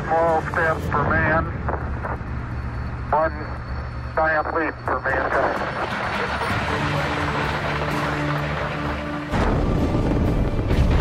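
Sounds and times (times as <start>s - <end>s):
man speaking over radio: 0.0s - 1.8s, 3.1s - 5.8s
radio static hiss: 0.0s - 6.0s
low steady hum: 0.0s - 6.4s.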